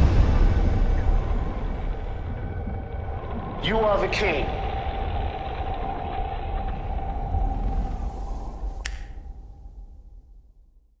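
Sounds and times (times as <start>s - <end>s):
low rumbling drone: 0.0s - 10.8s.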